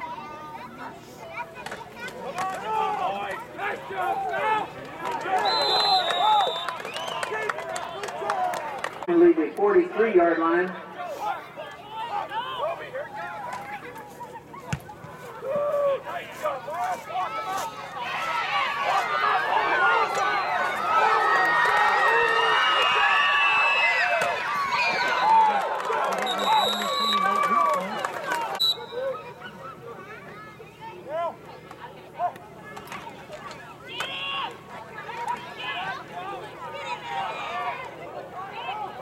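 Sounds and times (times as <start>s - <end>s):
crowd yelling and cheering: 1.7s - 39.0s
referee whistle: 5.4s - 7.2s, 26.2s - 27.4s, 28.6s - 29.2s.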